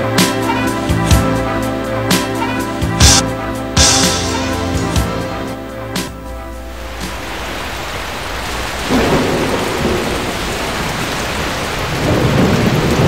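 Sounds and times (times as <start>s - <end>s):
heavy rain: 0.0s - 13.0s
rolling thunder: 2.4s - 13.0s.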